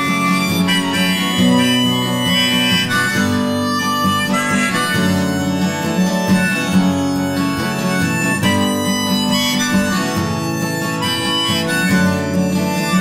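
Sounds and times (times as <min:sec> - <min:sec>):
harmonica playing: 0:00.0 - 0:13.0
strummed acoustic guitar: 0:00.0 - 0:13.0.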